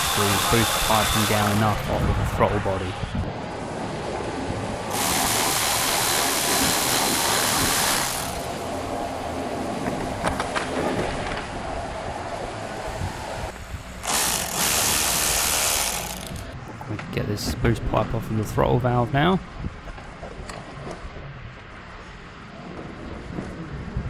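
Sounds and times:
cordless electric ratchet running: 0.0 - 1.8, 4.9 - 8.6, 14.0 - 16.6.

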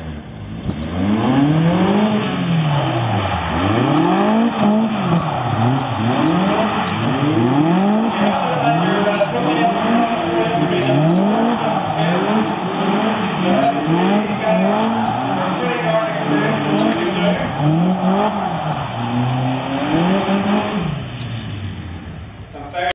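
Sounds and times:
sports car engine revving: 0.0 - 22.8.

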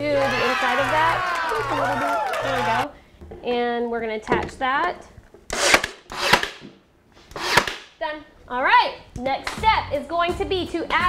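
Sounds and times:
brad nailer firing: 5.5 - 8.0.

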